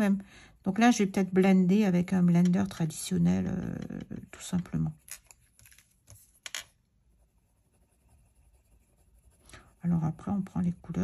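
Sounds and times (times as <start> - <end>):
pencil scratching on paper: 3.4 - 11.0.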